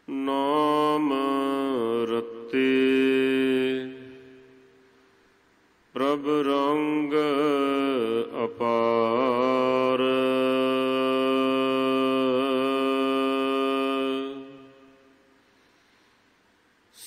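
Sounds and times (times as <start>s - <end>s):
man chanting melodically: 0.1s - 4.6s, 6.0s - 15.0s.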